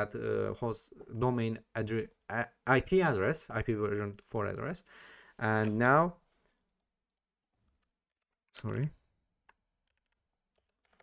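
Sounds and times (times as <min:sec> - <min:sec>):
person speaking: 0:00.0 - 0:06.3, 0:08.5 - 0:09.2.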